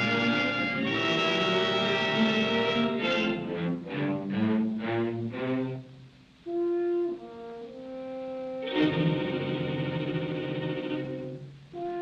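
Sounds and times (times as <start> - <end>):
brass ensemble: 0.0 - 12.0
orchestral film score: 0.0 - 12.0.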